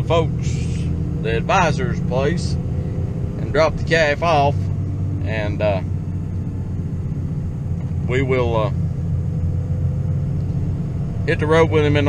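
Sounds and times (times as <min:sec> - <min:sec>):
vehicle engine drone from inside: 0:00.0 - 0:12.0.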